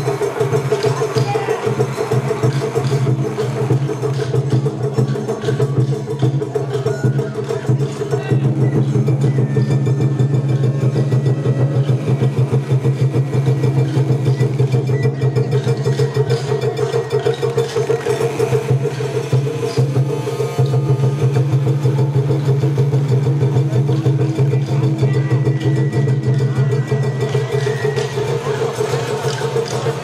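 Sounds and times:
taiko drums rolling: 0.0 - 30.0.

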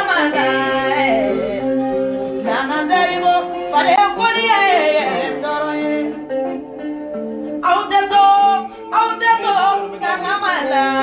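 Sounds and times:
woman singing long held notes: 0.0 - 1.8, 2.4 - 6.2.

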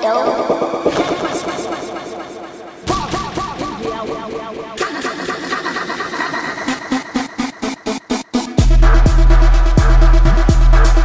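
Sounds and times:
repeating electronic beats: 0.0 - 11.0.

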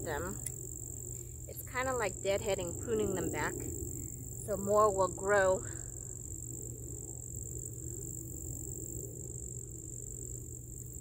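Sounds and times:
insects singing: 0.0 - 11.0
low steady rumble: 0.0 - 11.0.

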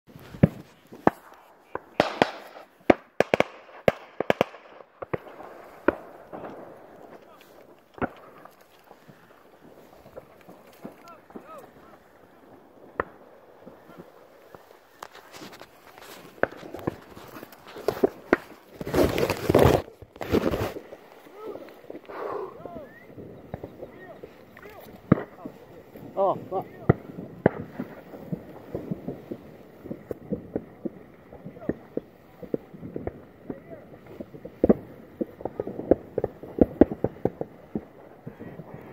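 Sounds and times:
shotgun shots: 0.4 - 7.1.

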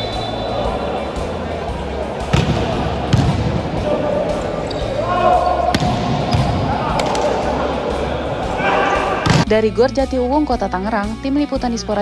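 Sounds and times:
players calling out: 0.0 - 9.5
volleyball struck by hand: 2.3 - 3.6, 5.7 - 7.3, 9.2 - 9.5.

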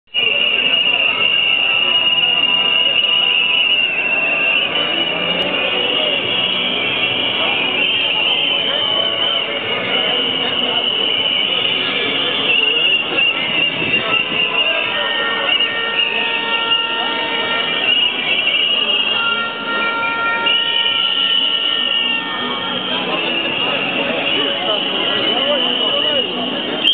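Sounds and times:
shrill whistle blasts: 0.1 - 9.4, 25.3 - 26.9
crowd chatter: 0.1 - 26.9.

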